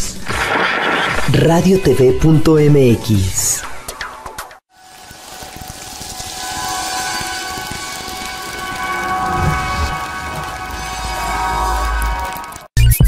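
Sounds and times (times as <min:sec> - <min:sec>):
low rumble: 0:07.8 - 0:12.7.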